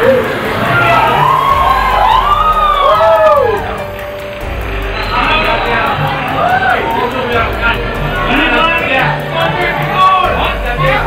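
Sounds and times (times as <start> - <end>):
siren wailing: 0.0 - 7.6
music: 0.0 - 11.0.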